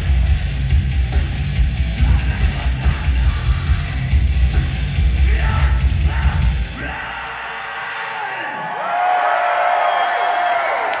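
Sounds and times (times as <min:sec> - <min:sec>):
loud metal music: 0:00.0 - 0:08.4
crowd cheering and whooping: 0:06.8 - 0:11.0.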